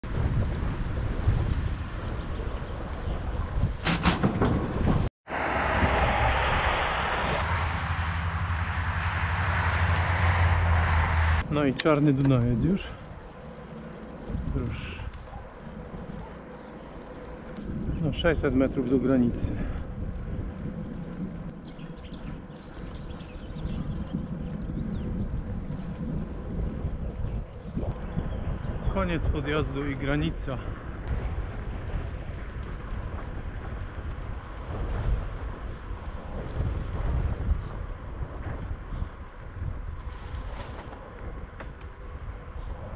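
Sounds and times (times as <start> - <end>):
wind rushing over microphone: 0.0 - 42.9
tyres rumbling on asphalt: 0.1 - 27.7, 28.6 - 42.9.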